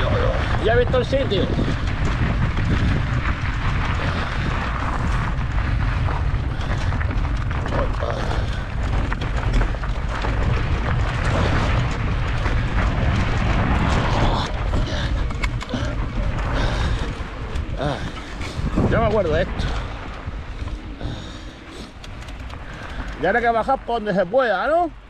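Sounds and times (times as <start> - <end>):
bike rattling: 0.0 - 25.0
bike tyres crunching on gravel: 0.0 - 25.0
wind rumble on microphone: 0.0 - 25.0
stones clicking and knocking: 20.1 - 23.3.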